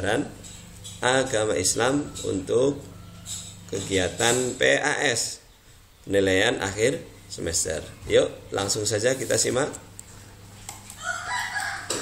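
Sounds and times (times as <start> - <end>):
rooster crowing: 1.9 - 3.6, 10.9 - 12.0.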